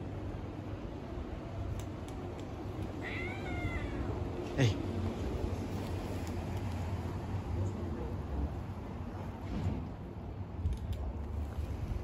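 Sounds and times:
kittens play-fighting: 0:02.1 - 0:07.0
kitten meowing: 0:03.0 - 0:04.2
short kitten cry: 0:03.0 - 0:04.2.

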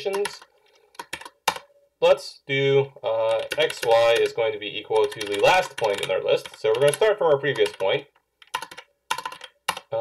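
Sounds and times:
keyboard keystrokes: 0:00.0 - 0:01.7, 0:03.3 - 0:04.3, 0:04.9 - 0:09.9.

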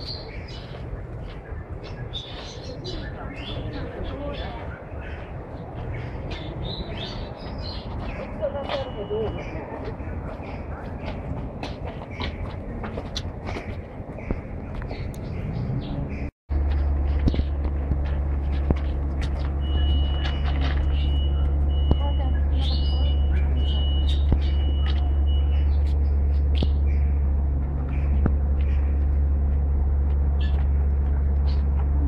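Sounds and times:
loud steady low hum: 0:16.1 - 0:32.0.

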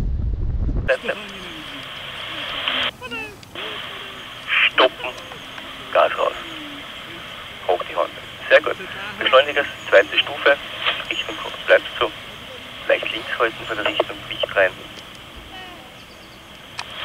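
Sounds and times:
voice over radio: 0:00.9 - 0:15.1
radio hiss: 0:00.9 - 0:17.0.

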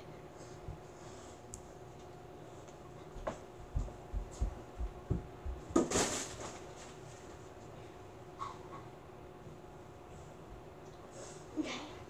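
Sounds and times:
running footsteps on carpet: 0:03.1 - 0:06.0.

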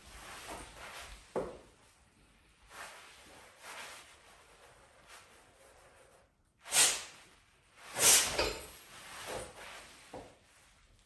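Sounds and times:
sharp bursts of breath: 0:07.9 - 0:08.5.

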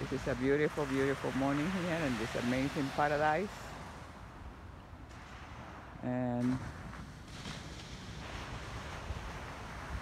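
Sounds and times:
distant surf hiss: 0:00.0 - 0:10.0
wind rumbling on microphone: 0:00.0 - 0:10.0.

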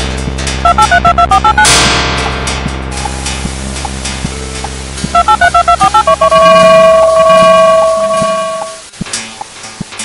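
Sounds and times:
electronic two-note tone: 0:00.6 - 0:01.8, 0:04.3 - 0:08.8.

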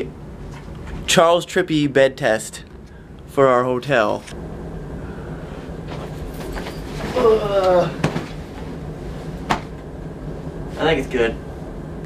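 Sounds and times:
body thumping onto bed: 0:05.9 - 0:08.8, 0:09.4 - 0:09.8.

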